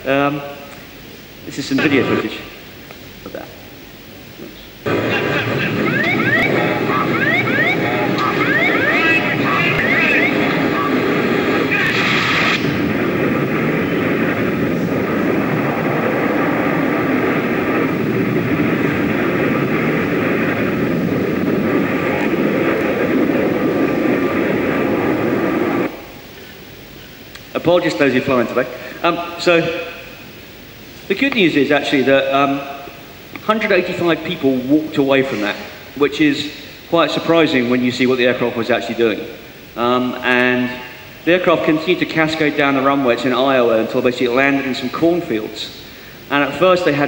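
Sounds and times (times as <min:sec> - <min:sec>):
aircraft din over loudspeakers: 0:04.9 - 0:25.9.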